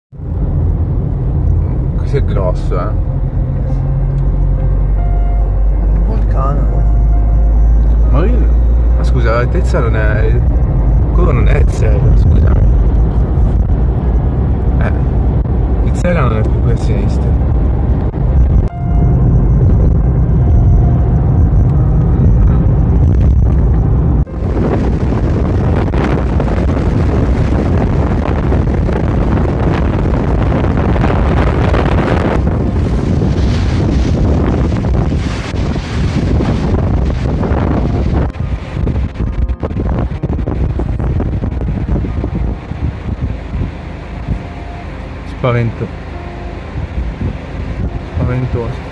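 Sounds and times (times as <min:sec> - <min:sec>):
car road and engine noise: 0:00.0 - 0:48.9
wind buffeting microphone: 0:10.1 - 0:45.2, 0:45.9 - 0:48.9.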